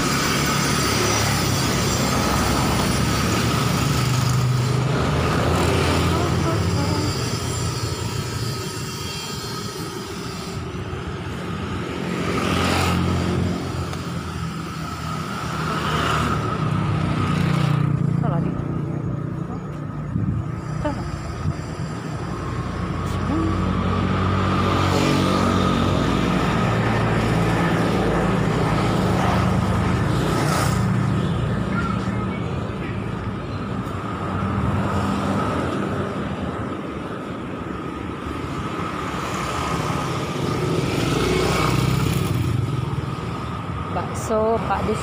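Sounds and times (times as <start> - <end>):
traffic engine hum: 0.0 - 45.0.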